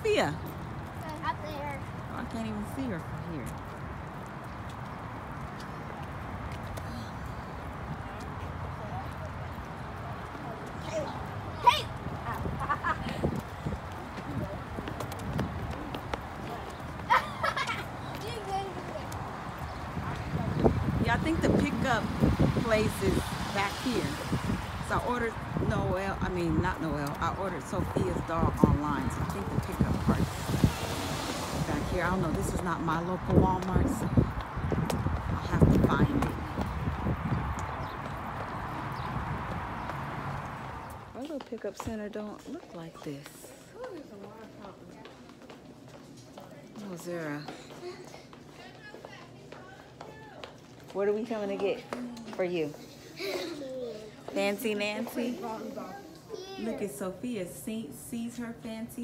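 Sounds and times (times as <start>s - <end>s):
footsteps on asphalt: 0.0s - 59.0s.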